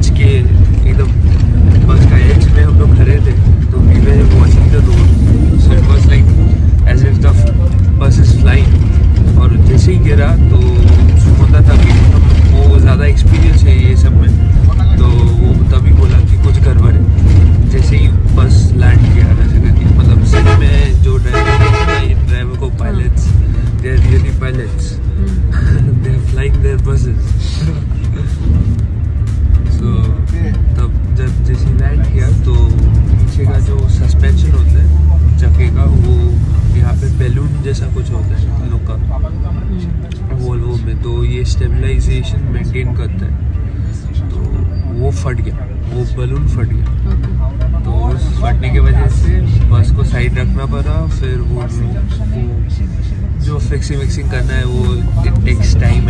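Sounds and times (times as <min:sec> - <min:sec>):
man talking: 0:00.0 - 0:28.5, 0:29.6 - 0:47.1, 0:47.8 - 0:56.0
bus engine and road rumble: 0:00.0 - 0:56.0.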